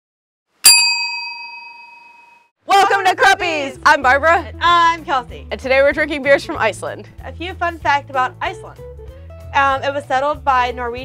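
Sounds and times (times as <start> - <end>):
service bell ding: 0.7 - 2.5.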